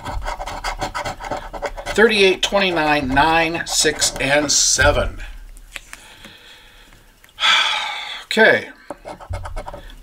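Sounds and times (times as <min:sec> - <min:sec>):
coin scratching lottery ticket: 0:00.0 - 0:04.6.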